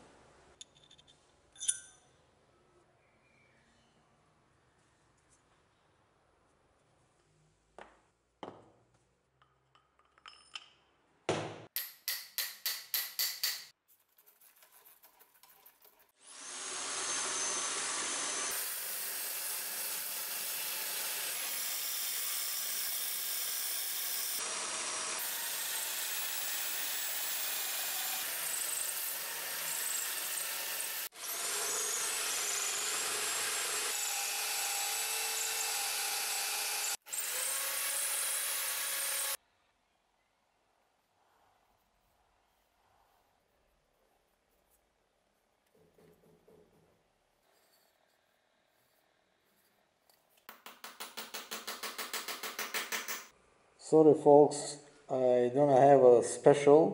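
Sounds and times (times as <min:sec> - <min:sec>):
electric drill running: 0:16.2 - 0:39.4.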